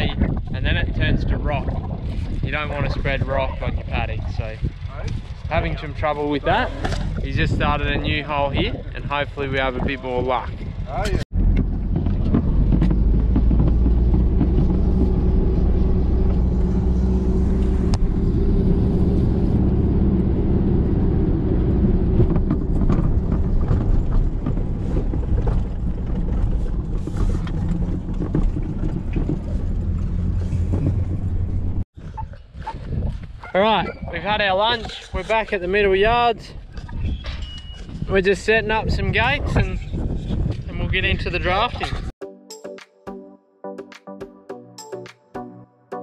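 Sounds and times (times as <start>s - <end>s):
vehicle engine droning: 1.9s - 31.9s
knocks and rattles: 9.6s - 19.4s, 20.8s - 31.8s.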